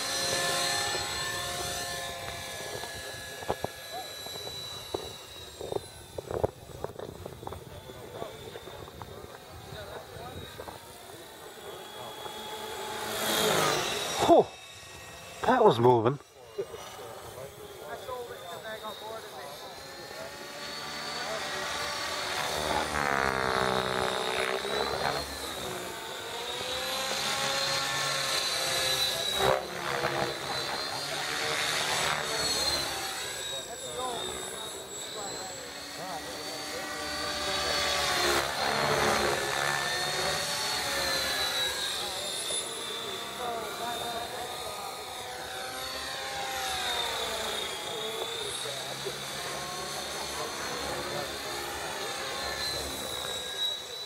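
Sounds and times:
rc helicopter motor whine: 0.0s - 54.0s
rotor blades buzzing: 0.0s - 54.0s.

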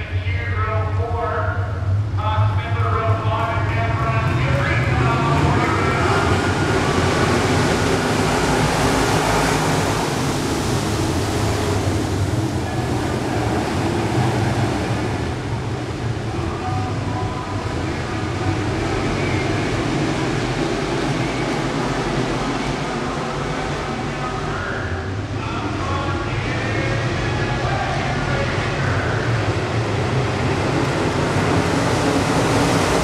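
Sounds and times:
race car engines at speed: 0.0s - 33.0s.

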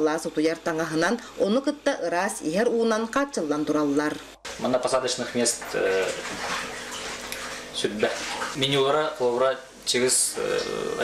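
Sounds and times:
running water: 4.5s - 11.0s
man speaking: 4.6s - 6.3s, 7.8s - 11.0s.

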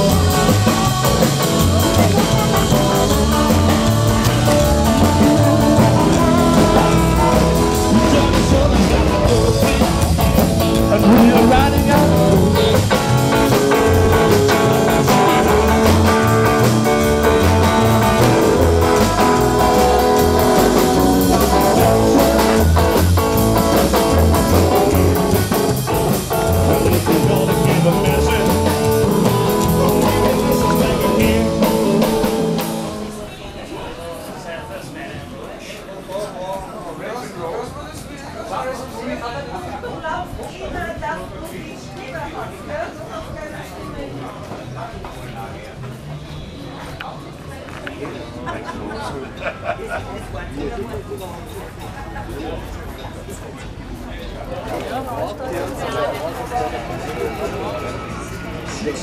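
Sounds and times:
man singing: 0.0s - 22.6s, 26.5s - 33.3s
electric guitar: 0.0s - 33.4s
upright bass walking: 0.0s - 33.4s
drums: 0.0s - 33.7s.

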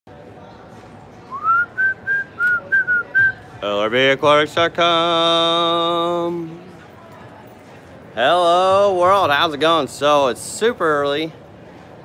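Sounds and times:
person whistling a tune: 1.3s - 3.4s.

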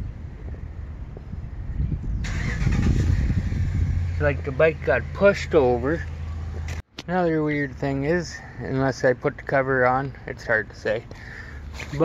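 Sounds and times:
road noise hiss: 2.2s - 12.0s.

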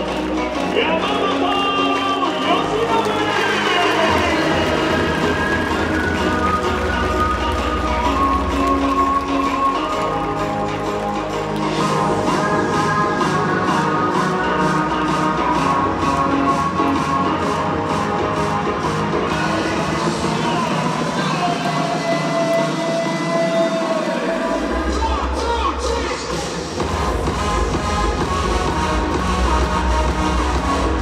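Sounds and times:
music over public-address system: 0.0s - 31.0s
steady beat: 11.3s - 31.0s.

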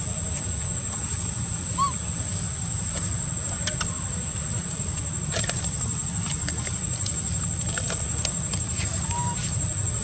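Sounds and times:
low background rumble: 0.0s - 10.0s
animal squeak: 1.8s - 2.0s.

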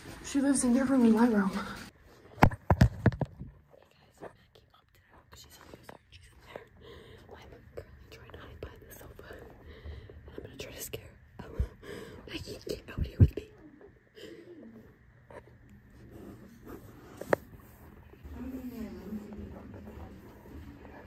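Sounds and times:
person whispering: 7.3s - 9.6s.

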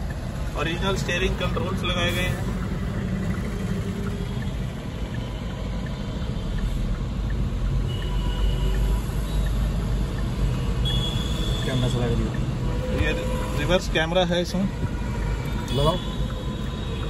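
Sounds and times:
car engine idling: 0.0s - 7.7s.

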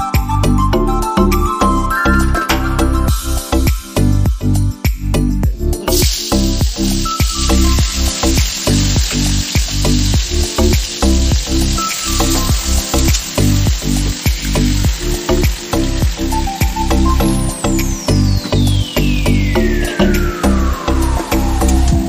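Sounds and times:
background music with steady beat: 0.0s - 22.0s
hot oil sizzling with frying meat: 5.8s - 22.0s.

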